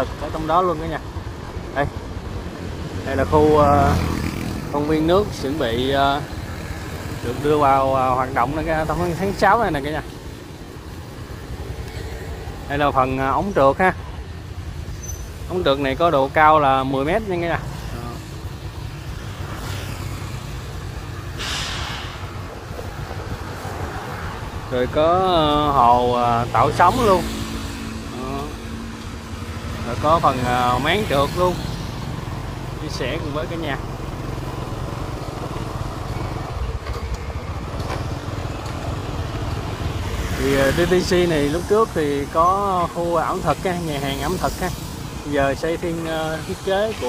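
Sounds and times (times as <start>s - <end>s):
passing vehicle rush: 0.0s - 47.0s
traffic engine hum: 0.0s - 47.0s.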